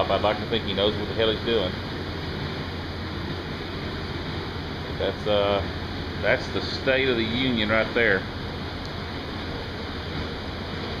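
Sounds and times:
fan running: 0:00.0 - 0:11.0.

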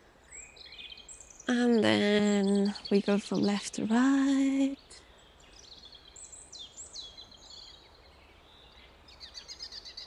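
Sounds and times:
small birds singing: 0:00.0 - 0:10.0.

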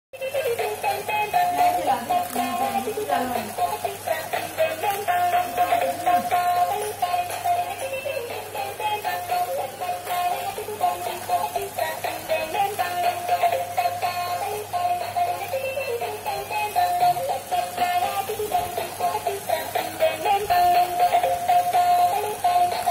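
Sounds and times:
toy playing electronic melody: 0:00.2 - 0:22.9.

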